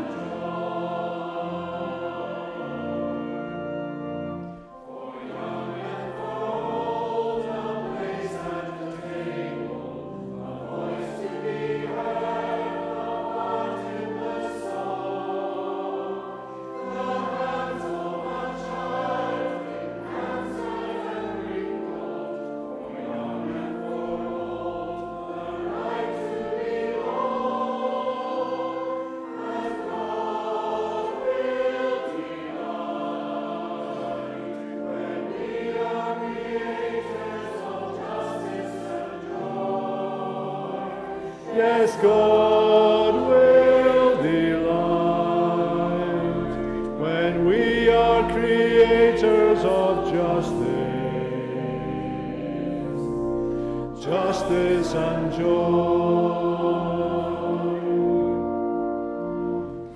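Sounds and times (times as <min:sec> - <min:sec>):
choir and congregation singing hymn: 0:00.0 - 0:59.9
sustained organ chords: 0:00.0 - 0:59.9.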